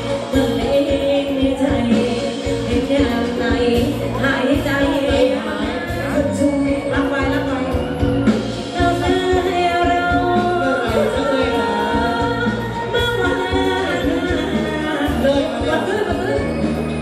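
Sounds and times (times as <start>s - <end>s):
live band music with beat: 0.0s - 17.0s
person singing: 8.7s - 16.8s.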